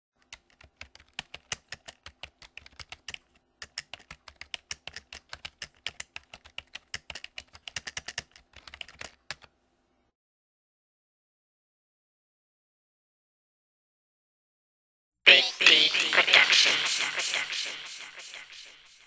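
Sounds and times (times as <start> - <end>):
computer keyboard typing: 0.2 - 9.5.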